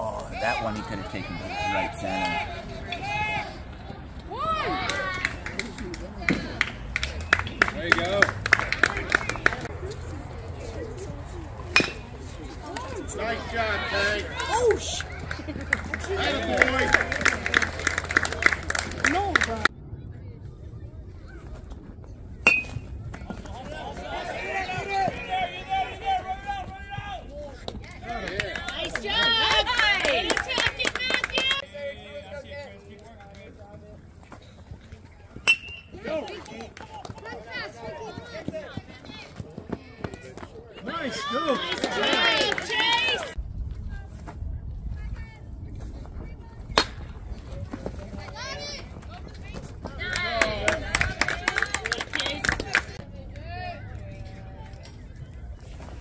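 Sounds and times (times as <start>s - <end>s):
spectators shouting and cheering: 0.0s - 19.7s, 22.7s - 31.8s, 35.8s - 43.4s
baseball bat hitting ball: 11.7s - 12.1s, 22.4s - 22.9s, 46.7s - 47.1s
bat cracking a baseball: 46.7s - 47.2s.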